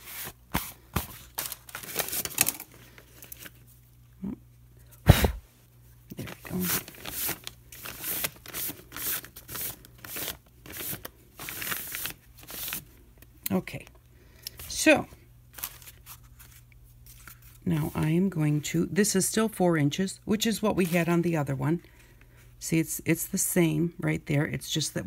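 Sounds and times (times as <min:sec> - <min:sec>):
paper towel rubbing surface: 0:00.0 - 0:00.8.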